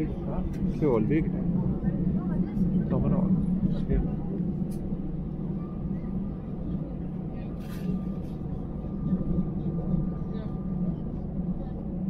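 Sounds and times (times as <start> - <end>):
jet cabin engine drone: 0.0 - 12.0.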